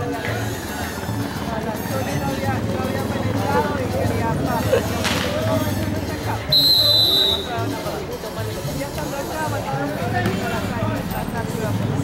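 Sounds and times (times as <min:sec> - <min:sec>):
chatter of players and spectators: 0:00.0 - 0:12.0
referee's whistle blast: 0:06.5 - 0:07.5.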